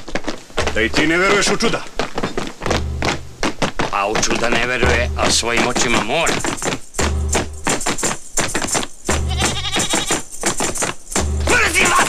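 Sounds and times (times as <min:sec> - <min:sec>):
deep bass note: 0:02.7 - 0:03.4, 0:04.8 - 0:05.5, 0:07.0 - 0:07.7
music with steady beat: 0:02.7 - 0:03.6, 0:04.2 - 0:12.0.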